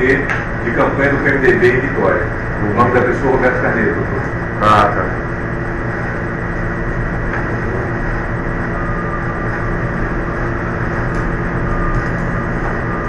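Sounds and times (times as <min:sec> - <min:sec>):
room noise hum and hiss: 0:00.0 - 0:13.0.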